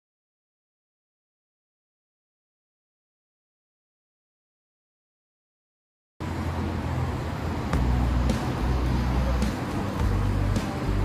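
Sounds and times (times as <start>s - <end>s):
road traffic rumble: 6.2s - 11.0s.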